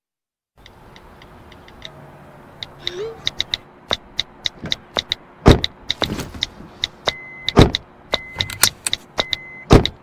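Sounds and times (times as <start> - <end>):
phone keyboard clicks: 2.6 - 10.0.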